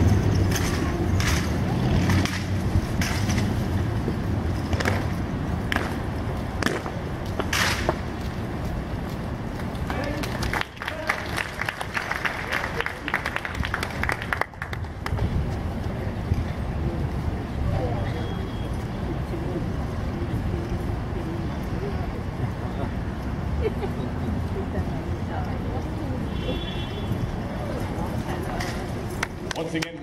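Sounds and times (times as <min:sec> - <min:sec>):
low crowd murmur: 0:00.0 - 0:30.0.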